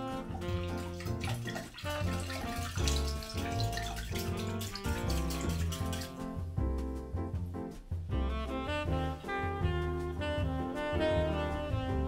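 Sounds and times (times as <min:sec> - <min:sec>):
background music: 0:00.0 - 0:12.0
whisk stirring liquid in glass bowl: 0:00.5 - 0:06.2.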